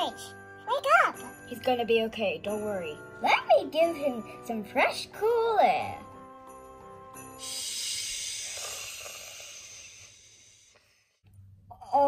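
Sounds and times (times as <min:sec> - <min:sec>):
airy hiss: 0:07.2 - 0:11.1.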